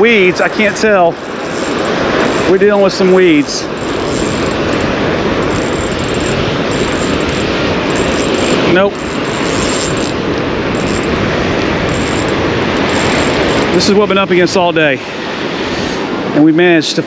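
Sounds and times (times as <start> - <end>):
surf breaking: 0.0 - 16.1
wind on microphone: 0.0 - 16.4.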